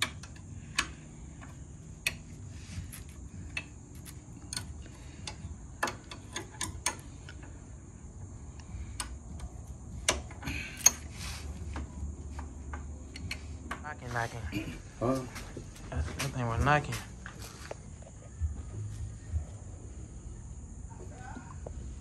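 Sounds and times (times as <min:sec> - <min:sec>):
tools clicking on metal hub: 0:00.0 - 0:07.5, 0:08.6 - 0:11.1, 0:12.7 - 0:13.8.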